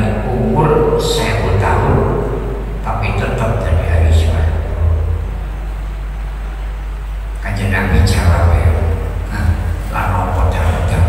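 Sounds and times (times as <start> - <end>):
faint microphone hiss: 0.0 - 11.0
low electrical hum: 0.0 - 11.0.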